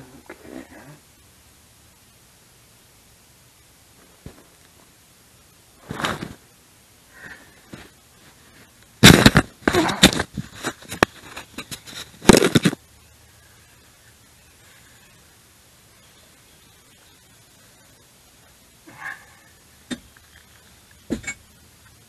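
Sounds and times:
rustling and knocking on microphone: 7.7s - 12.8s.

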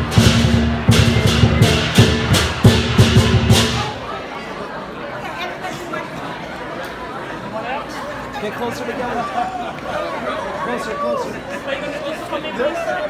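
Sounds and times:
clashing cymbals: 0.0s - 3.9s
drum beating: 0.0s - 4.2s
crowd chatter: 0.0s - 13.0s.

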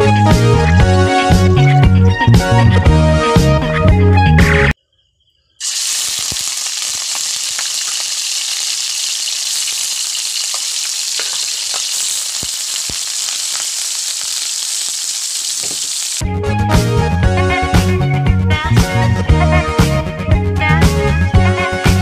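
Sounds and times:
pork sizzling in hot oil: 5.6s - 16.2s.

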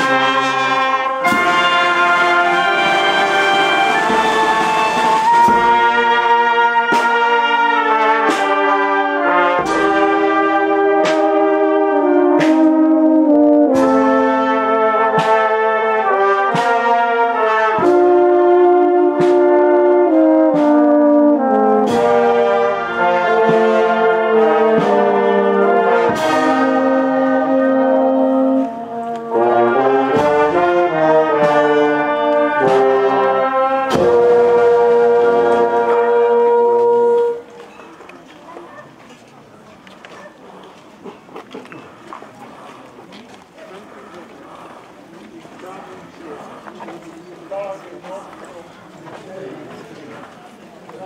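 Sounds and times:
brass band playing a slow march: 0.0s - 51.0s.

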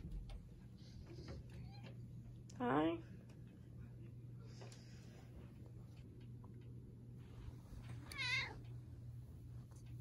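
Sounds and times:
cat meowing: 8.1s - 8.7s.

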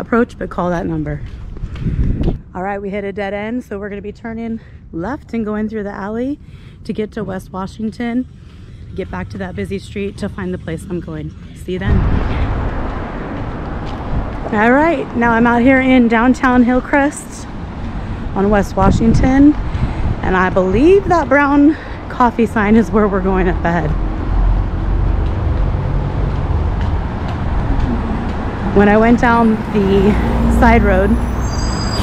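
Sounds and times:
road traffic passing: 0.0s - 32.0s.

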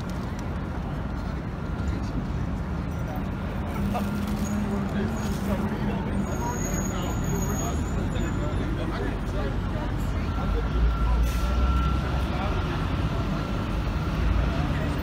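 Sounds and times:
heavy vehicle engine rumbling: 0.0s - 15.0s
pedestrians chattering: 0.0s - 15.0s.

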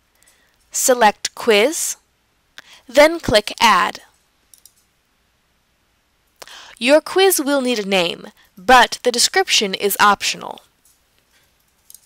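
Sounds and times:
computer mouse clicks: 4.5s - 4.9s.

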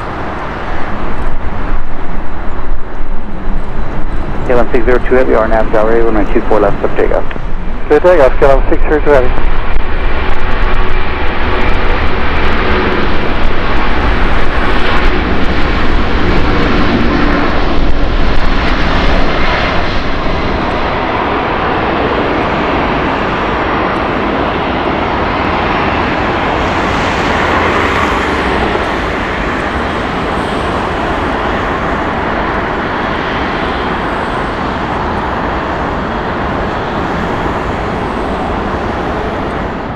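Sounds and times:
jet engines at takeoff: 0.0s - 39.9s.

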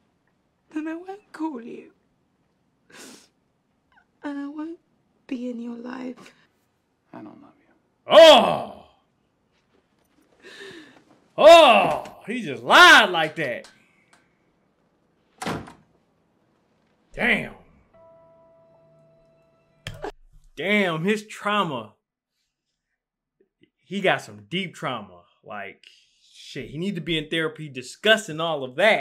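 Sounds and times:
woman crying breath: 10.4s - 11.0s
door shutting: 15.4s - 15.9s.

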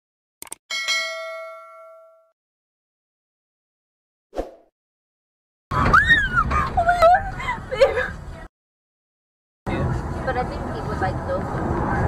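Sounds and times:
notification bell ding: 0.7s - 2.4s.

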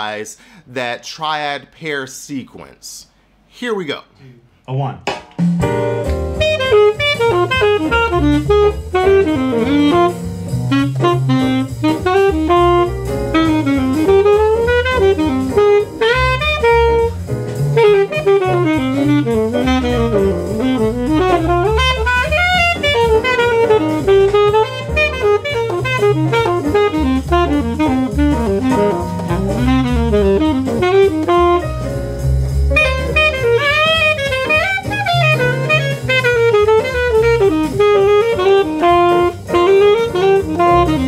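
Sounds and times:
bass: 4.0s - 41.0s
drums: 5.0s - 41.0s
alto saxophone jazz improvising: 5.6s - 41.0s.

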